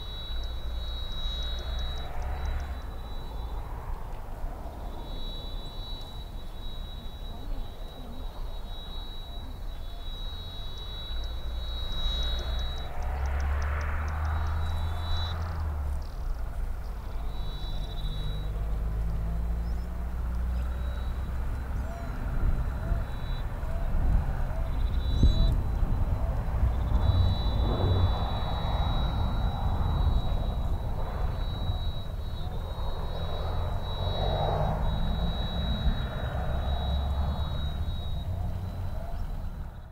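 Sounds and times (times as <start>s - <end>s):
low rumble: 23.7s - 39.8s.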